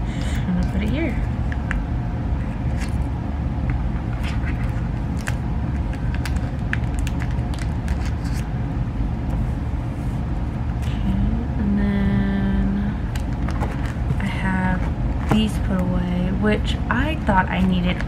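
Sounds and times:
low background rumble: 0.0 - 18.0
plastic sleeves clicking and rustling: 4.2 - 8.4
person humming: 10.8 - 13.1.

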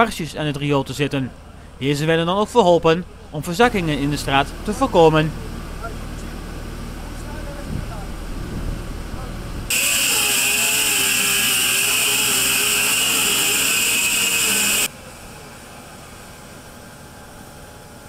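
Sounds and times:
low engine rumble: 1.2 - 10.9
machinery hum: 3.0 - 18.0
loud hissing rush with whine: 9.7 - 18.0.

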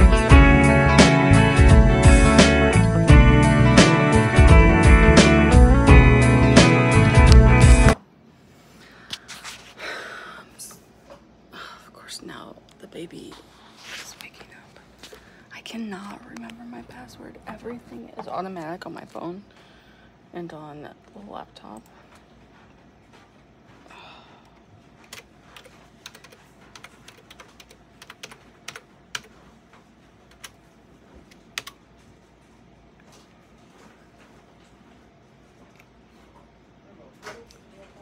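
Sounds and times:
woman whispering: 11.5 - 17.8
woman speaking in low voice: 11.6 - 14.9, 15.5 - 19.5, 20.3 - 21.9
laptop keyboard typing: 25.0 - 29.4, 30.2 - 30.6, 31.2 - 31.8.

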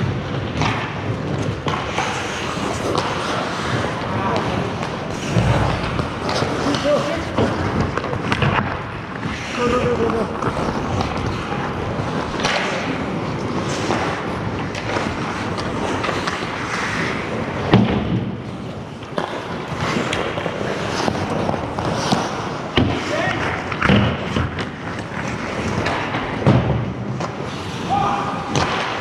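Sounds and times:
skates scraping on ice: 0.0 - 29.0
sticks and puck knocking: 0.5 - 18.2, 19.0 - 27.4.

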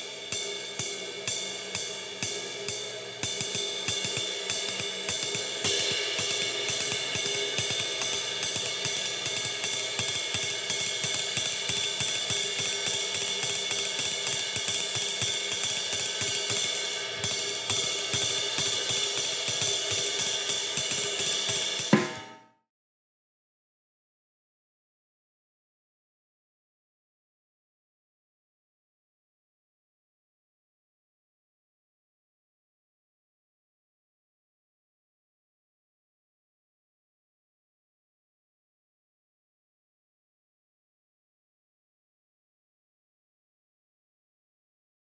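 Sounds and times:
drum kit playing lightly: 0.0 - 22.4
ride cymbal swing pattern: 0.0 - 22.4.

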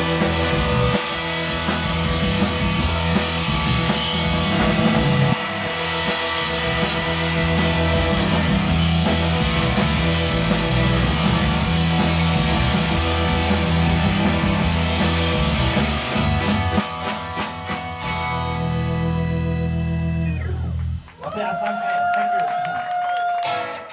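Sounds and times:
drums playing: 0.0 - 19.8
organ: 0.0 - 21.0
bass guitar: 0.0 - 21.7, 23.3 - 23.9
electric guitar: 0.0 - 23.9.

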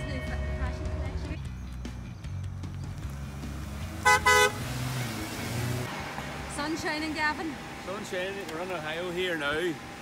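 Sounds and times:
van engine and tyres passing: 0.0 - 10.0
car horn tooting: 4.0 - 4.7.

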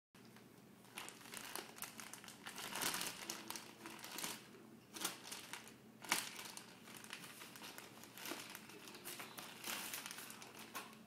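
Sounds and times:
plastic bag crinkling: 0.2 - 11.0.

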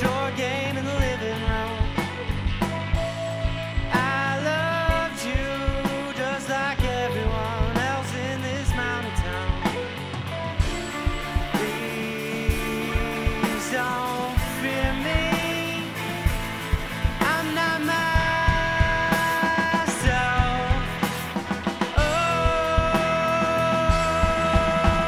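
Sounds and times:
bass guitar: 0.0 - 25.0
drum kit and cymbals: 0.0 - 25.0
electric guitars: 0.0 - 25.0.

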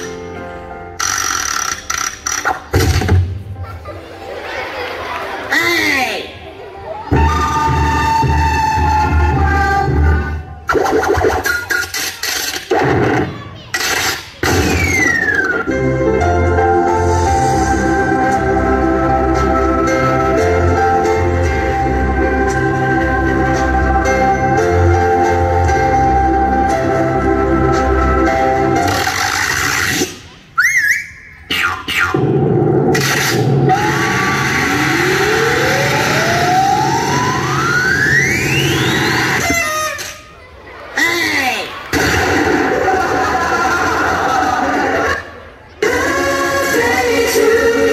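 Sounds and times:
noisy sound effects over loudspeakers: 0.0 - 47.9
warbling cartoon tone: 28.8 - 40.3
falling whistle: 30.6 - 31.4, 35.0 - 40.0
rising pitch glide: 32.9 - 39.5.

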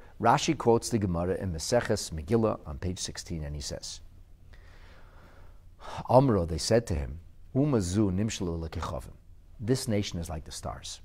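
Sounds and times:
steady low hum: 0.0 - 11.0
man breathing softly: 4.4 - 6.1.

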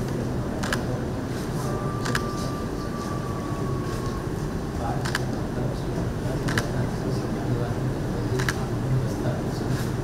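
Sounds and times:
low room rumble: 0.0 - 10.0
thin steady whine: 0.0 - 10.0.

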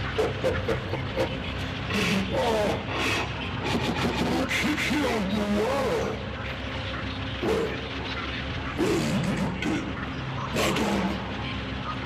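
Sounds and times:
noisy rumble: 0.0 - 12.0
distorted glitched voice: 0.3 - 6.3, 8.7 - 12.0.

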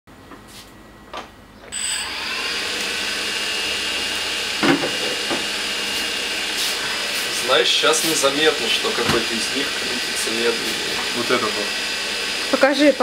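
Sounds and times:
quadcopter propellers whirring: 1.8 - 13.0.

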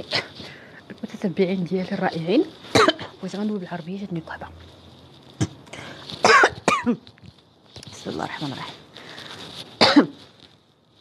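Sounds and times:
woman coughing: 2.7 - 3.2, 6.2 - 7.0, 9.8 - 10.2.

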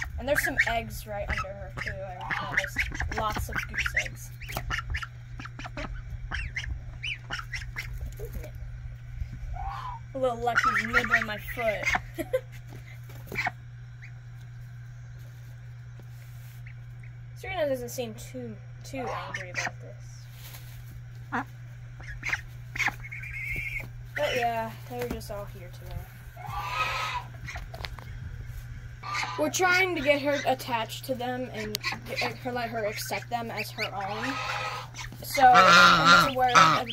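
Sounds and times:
goslings peeping: 0.0 - 36.9.

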